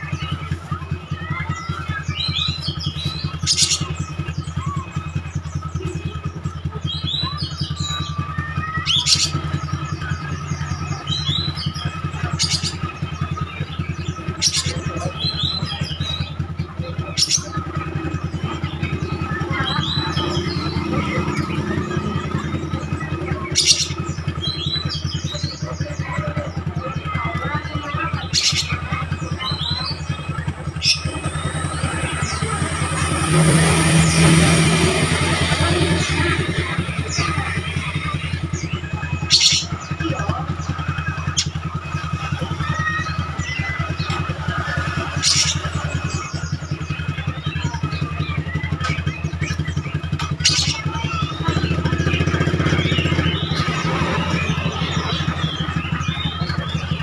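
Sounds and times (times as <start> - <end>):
bird singing high phrases: 0.0 - 57.0
sharp loud bird notes: 0.0 - 57.0
steady low hum: 28.7 - 40.7.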